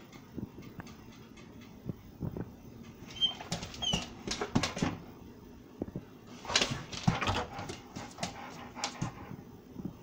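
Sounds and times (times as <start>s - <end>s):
dog whining: 3.1s - 4.3s
dog panting: 6.6s - 9.4s.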